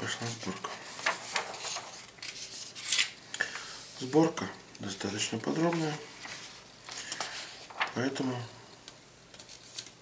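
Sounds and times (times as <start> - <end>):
paper rustling: 0.0 - 3.2, 5.4 - 8.4, 9.4 - 10.0.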